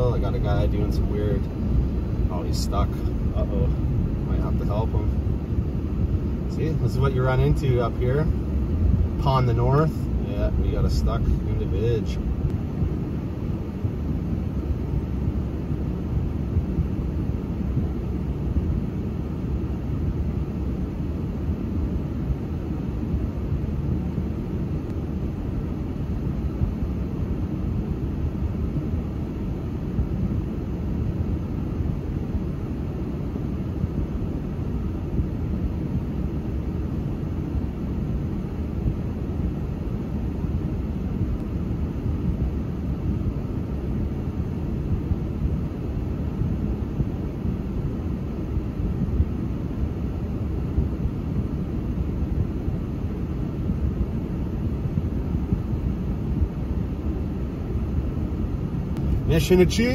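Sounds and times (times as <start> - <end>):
car engine idling: 0.0 - 13.8, 58.3 - 59.9.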